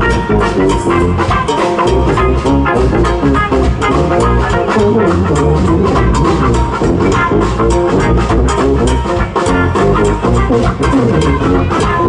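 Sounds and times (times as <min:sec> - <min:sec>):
drum kit: 0:00.0 - 0:12.0
guitar: 0:00.0 - 0:12.0
sousaphone bass line: 0:00.0 - 0:12.0.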